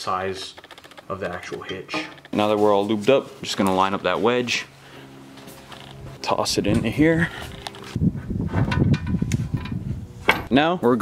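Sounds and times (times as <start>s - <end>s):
metal scraping and rumbling: 0.4s - 3.0s, 5.6s - 10.6s
sharp metal knocks: 0.6s - 2.4s, 8.7s - 10.6s.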